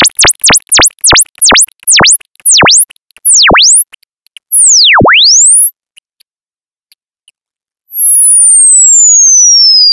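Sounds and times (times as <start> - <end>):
electronic tone sweeping in pitch: 0.0 - 6.0.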